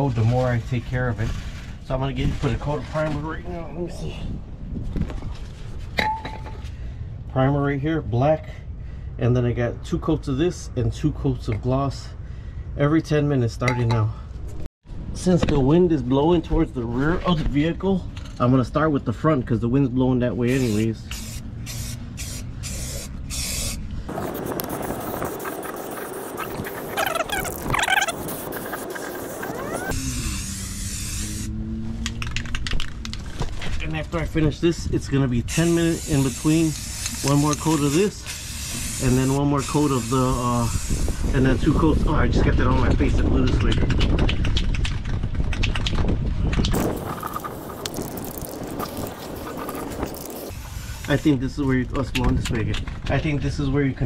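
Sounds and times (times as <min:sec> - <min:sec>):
wind on microphone: 0:03.3 - 0:06.0, 0:23.4 - 0:30.4, 0:39.9 - 0:51.0
aerosol spray can spraying: 0:20.5 - 0:31.4, 0:35.9 - 0:41.1, 0:46.8 - 0:51.2.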